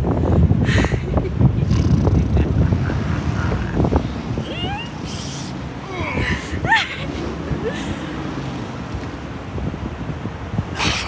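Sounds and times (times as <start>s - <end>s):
wind buffeting microphone: 0.0s - 11.0s
person squealing: 4.5s - 6.8s, 10.8s - 11.0s.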